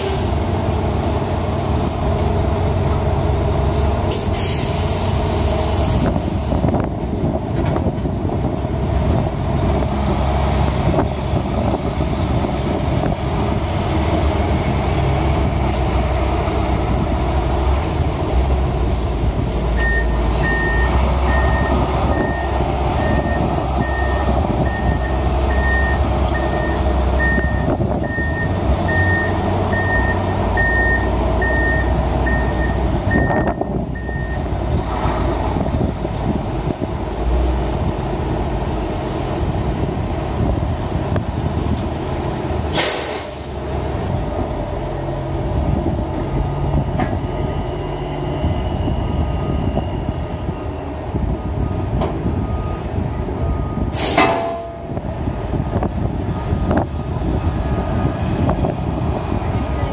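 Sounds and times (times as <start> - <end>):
diesel truck engine running: 0.0 - 59.9
air brake hiss: 4.1 - 6.3, 42.7 - 43.6, 53.9 - 54.4
reversing alarm beeping: 19.8 - 34.5, 47.4 - 50.9, 51.6 - 55.0.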